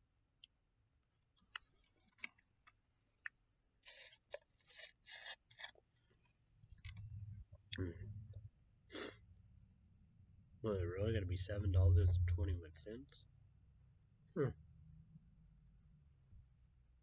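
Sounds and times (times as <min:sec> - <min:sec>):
low rumble: 0:06.8 - 0:08.6, 0:09.3 - 0:13.4
person murmuring: 0:14.4 - 0:14.6.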